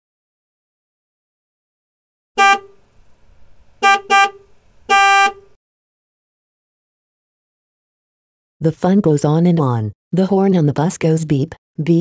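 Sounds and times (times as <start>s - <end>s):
vehicle horn honking: 2.4s - 2.8s, 3.8s - 5.6s.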